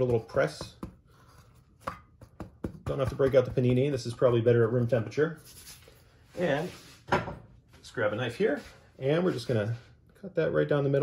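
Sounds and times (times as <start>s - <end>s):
people talking: 0.0s - 0.8s, 2.9s - 5.4s, 6.4s - 6.8s, 7.8s - 11.0s.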